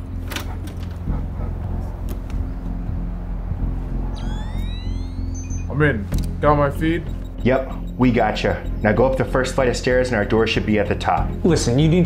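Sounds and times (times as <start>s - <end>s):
rising electronic sweeps: 3.0s - 12.0s.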